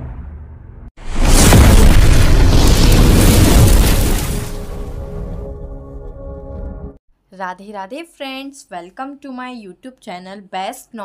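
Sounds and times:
explosion boom and low rumble: 0.0 - 5.8.

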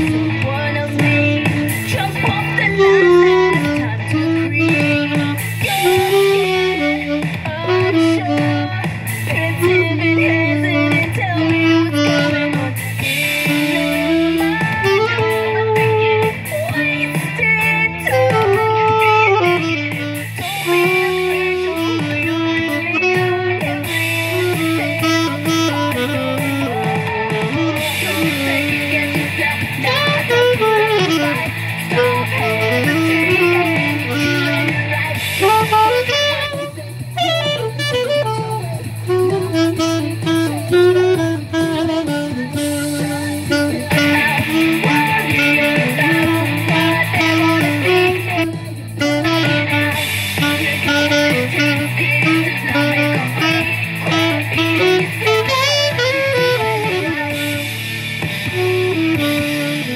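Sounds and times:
backing song with guitar and bass: 0.0 - 59.9
saxophone melody: 0.0 - 59.9.

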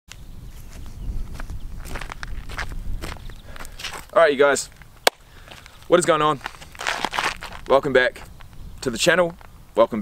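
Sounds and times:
footsteps on grass: 0.5 - 8.6.

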